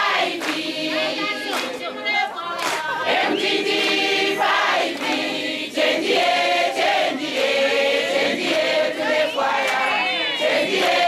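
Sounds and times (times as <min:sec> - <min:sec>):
group singing in harmony: 0:00.0 - 0:11.0.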